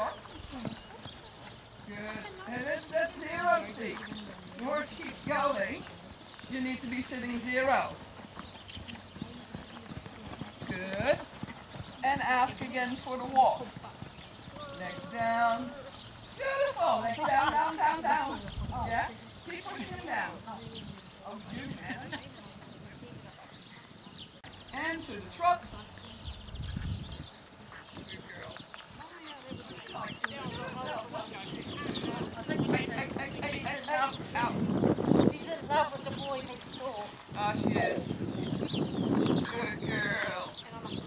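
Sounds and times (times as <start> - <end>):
horse trotting on sand: 0.0 - 24.2, 27.4 - 39.6.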